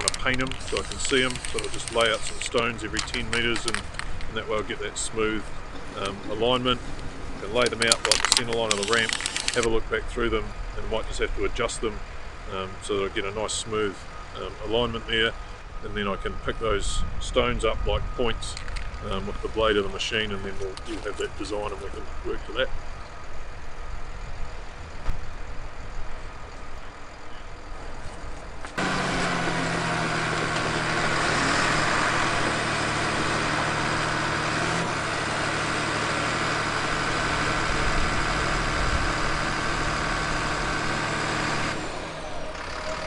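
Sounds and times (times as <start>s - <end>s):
dozer diesel engine running: 0.0s - 22.8s, 27.9s - 43.0s
low outdoor rumble: 0.0s - 43.0s.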